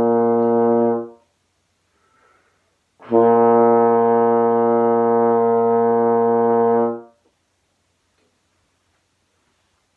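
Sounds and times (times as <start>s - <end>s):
baritone horn holding low note: 0.0s - 1.2s, 3.0s - 7.1s.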